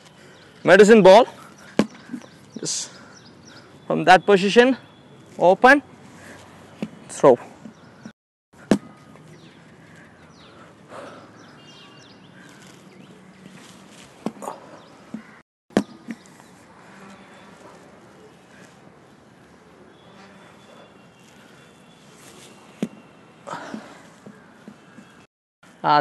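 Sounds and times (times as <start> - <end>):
outdoor background noise: 0.0 - 26.0
medicine ball thuds: 1.7 - 2.2, 8.6 - 9.1, 14.2 - 14.5, 15.1 - 16.2.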